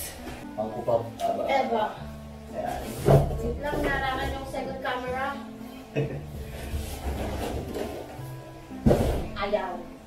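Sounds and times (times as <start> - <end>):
cardboard packaging scraping: 6.4 - 8.2.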